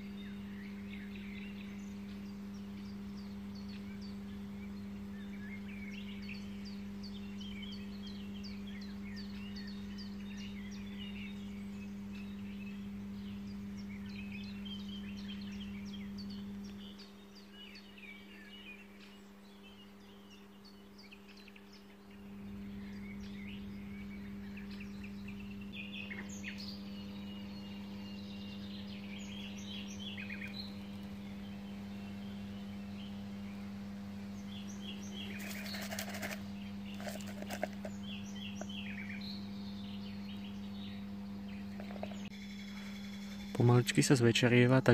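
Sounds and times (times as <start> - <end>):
low hum: 0.0 - 43.9
songbirds singing: 0.0 - 44.9.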